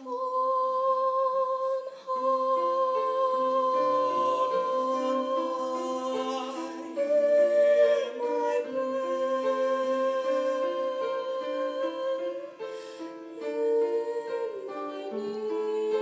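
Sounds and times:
vocal duet singing: 0:00.0 - 0:16.0
keyboard accompaniment: 0:01.9 - 0:16.0.

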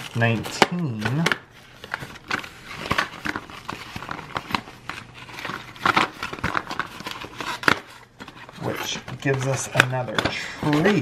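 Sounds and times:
paper and cardboard crinkling: 0:00.0 - 0:11.0.

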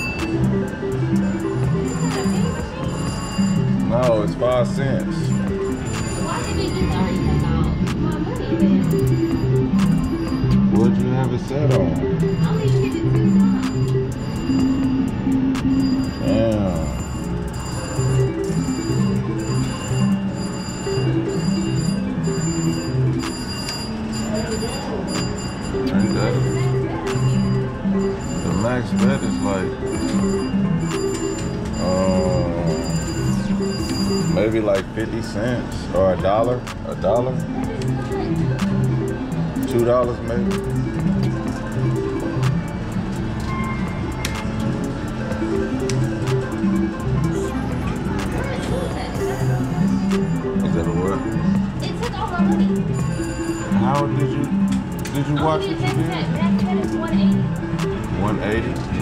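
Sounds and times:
high chiming tones: 0:00.0 - 0:59.0
slot machine electronic tune: 0:00.0 - 0:59.0
short high beep: 0:15.6 - 0:34.6.

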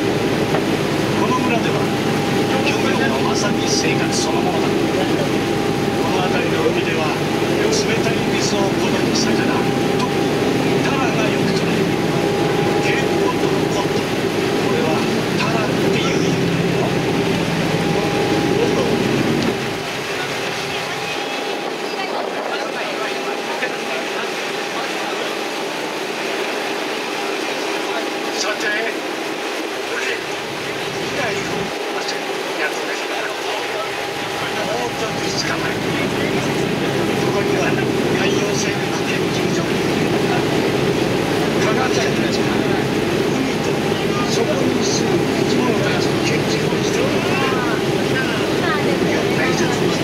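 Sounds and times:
boat engine rumbling: 0:00.0 - 0:50.0
steady hum: 0:00.0 - 0:50.0.

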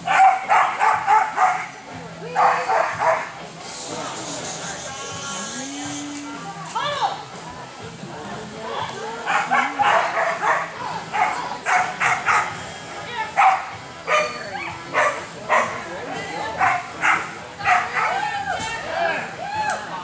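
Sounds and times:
dog barking: 0:00.1 - 0:01.8, 0:02.4 - 0:03.3, 0:09.3 - 0:12.6, 0:13.4 - 0:15.8, 0:16.6 - 0:18.2.

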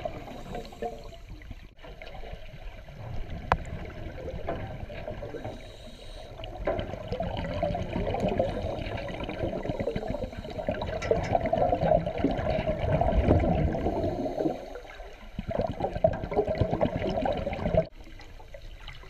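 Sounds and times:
underwater bubbling: 0:00.0 - 0:19.0.

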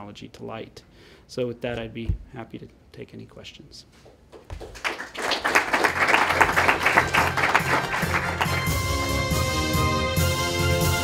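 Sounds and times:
audience applauding: 0:04.5 - 0:09.2
theme music with held notes: 0:06.5 - 0:11.0.

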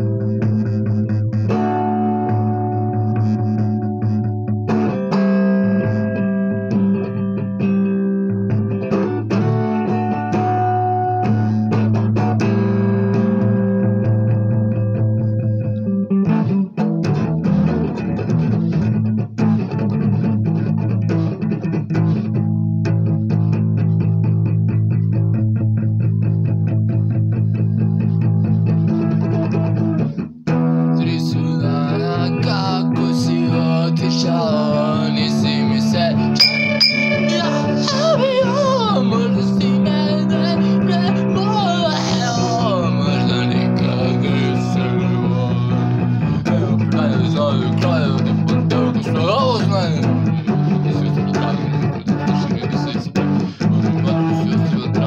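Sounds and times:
electric guitar strumming chords: 0:00.0 - 0:31.0, 0:31.8 - 0:55.0.

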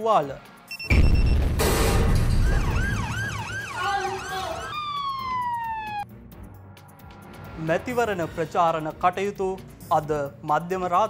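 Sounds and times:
loud bang: 0:00.9 - 0:03.5
ambulance siren wailing: 0:02.2 - 0:06.1.

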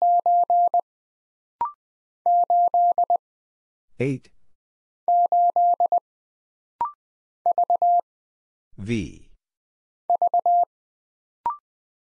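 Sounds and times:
morse code beeps: 0:00.0 - 0:00.8, 0:01.6 - 0:03.2, 0:05.1 - 0:06.0, 0:06.8 - 0:08.0, 0:10.1 - 0:10.7.

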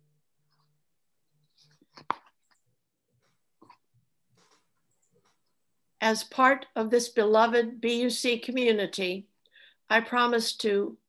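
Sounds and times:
faint breaths: 0:09.4 - 0:09.9.

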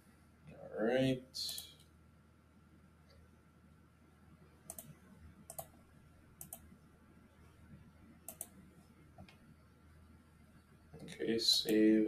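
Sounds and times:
computer mouse clicking: 0:01.5 - 0:01.9, 0:04.6 - 0:05.8, 0:06.4 - 0:06.8, 0:08.2 - 0:08.6, 0:10.9 - 0:11.9.

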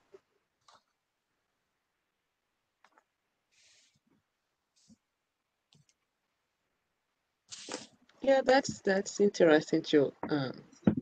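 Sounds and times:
burst of hiss: 0:07.5 - 0:07.9
person speaking: 0:07.5 - 0:11.0.

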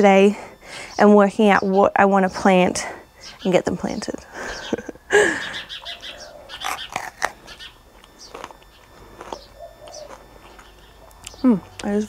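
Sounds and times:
person laughing: 0:04.3 - 0:05.8
crunching of bitten pepper: 0:06.6 - 0:11.9.

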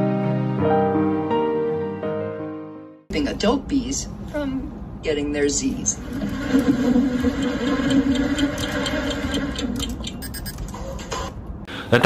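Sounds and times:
background music: 0:00.0 - 0:03.0.

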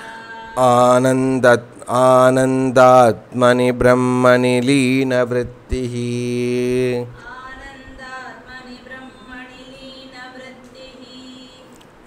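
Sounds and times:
man chanting verse: 0:00.6 - 0:07.2.

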